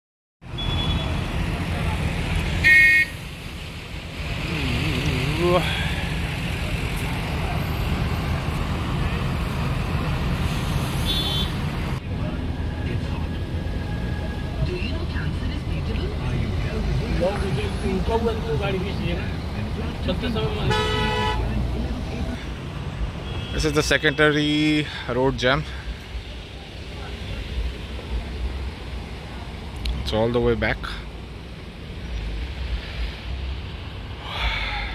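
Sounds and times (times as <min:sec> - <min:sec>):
traffic rumble: 0:00.4 - 0:34.9
vehicle horn honk: 0:00.6 - 0:01.2, 0:02.6 - 0:03.2, 0:11.0 - 0:11.6, 0:20.5 - 0:21.5, 0:23.2 - 0:24.2.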